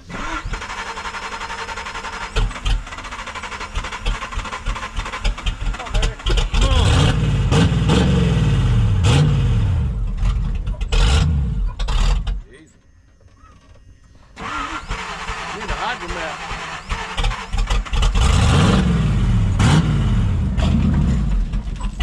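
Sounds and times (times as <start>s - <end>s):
starter motor cranking: 0.0s - 7.1s, 14.4s - 18.9s
engine revving: 0.0s - 12.4s, 14.4s - 22.0s.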